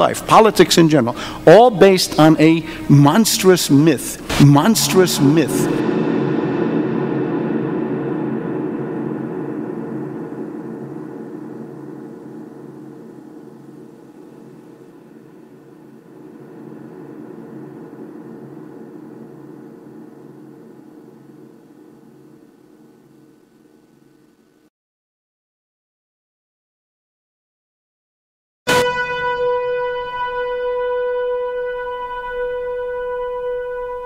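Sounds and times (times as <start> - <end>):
low ambient drone: 0.0 - 24.7, 28.8 - 34.0.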